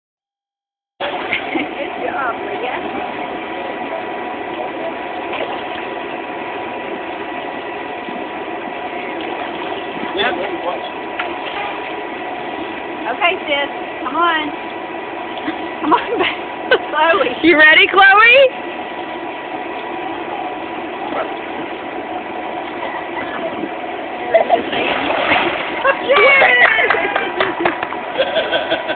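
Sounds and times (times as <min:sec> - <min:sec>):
running water: 0:01.0 - 0:28.9
children splashing into pool: 0:24.5 - 0:27.8.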